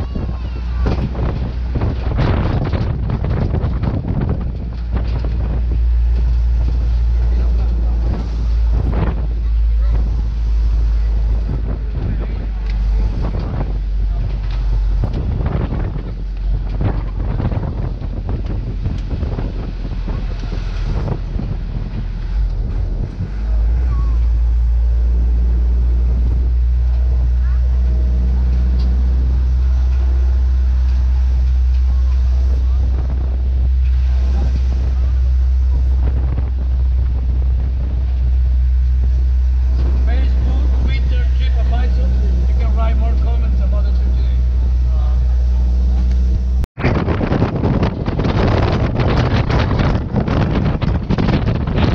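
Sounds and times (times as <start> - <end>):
engine and road rumble: 0.0 - 51.9
wind buffeting microphone: 0.0 - 51.9.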